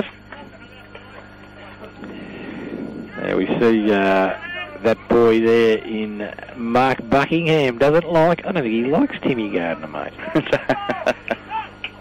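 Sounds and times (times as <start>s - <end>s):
faint background voices: 0.0s - 5.3s
steady low hum: 0.0s - 12.0s.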